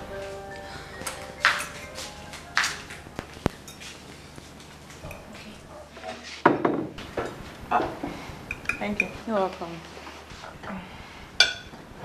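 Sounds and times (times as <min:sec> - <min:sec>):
dishes and cutlery clinking: 0:00.9 - 0:04.0, 0:04.9 - 0:09.5, 0:11.4 - 0:11.8.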